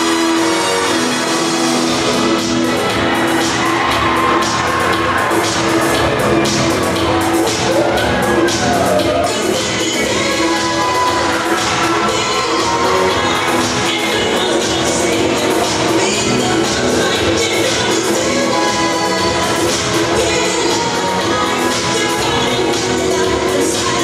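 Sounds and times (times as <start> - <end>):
loud dance music: 0.0 - 24.0.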